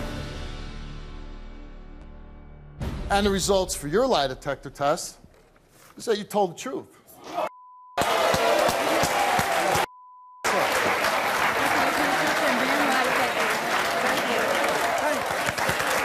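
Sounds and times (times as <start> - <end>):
censor bleep: 7.5 - 8.0, 9.9 - 10.5
audience applauding and cheering: 8.0 - 16.0.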